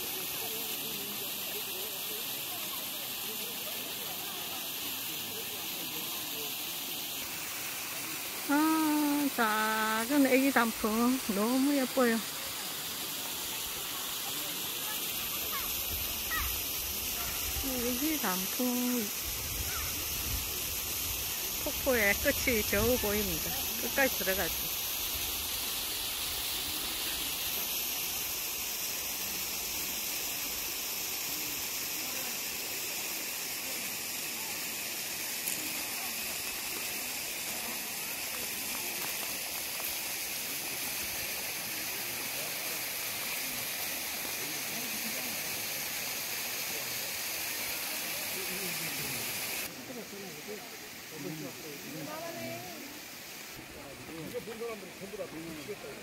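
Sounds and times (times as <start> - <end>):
faint voices of people: 0.0 - 24.9, 26.4 - 56.0
waterfall rushing hiss: 0.0 - 56.0.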